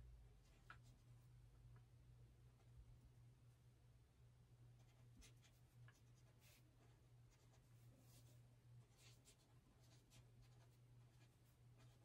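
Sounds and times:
low steady hum: 0.0 - 12.0
marker scratching on paper: 4.8 - 12.0.

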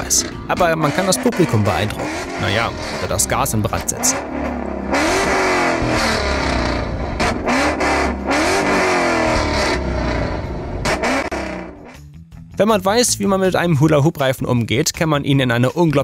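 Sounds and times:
exhaust cracks: 0.0 - 12.0
car engine revving: 0.0 - 12.1.

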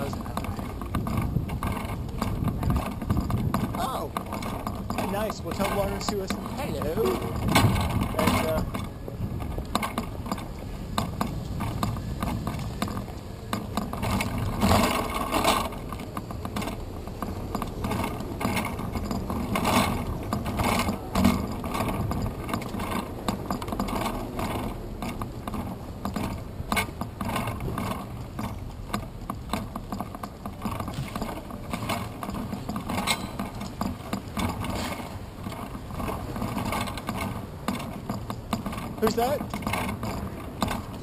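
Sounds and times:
bike rattling and clicking: 0.0 - 41.0
low road rumble: 0.0 - 41.0.

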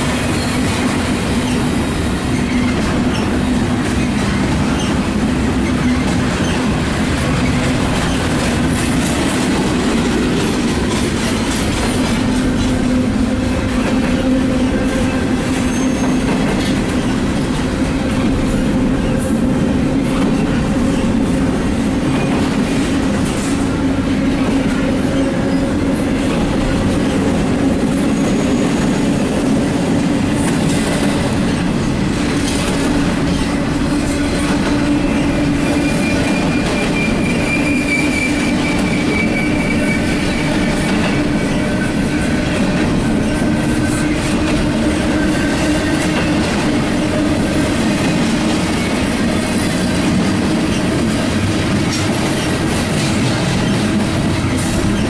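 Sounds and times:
train wheels rolling on rail: 0.0 - 55.0
high wheel squeal: 14.8 - 16.3, 33.9 - 42.7.

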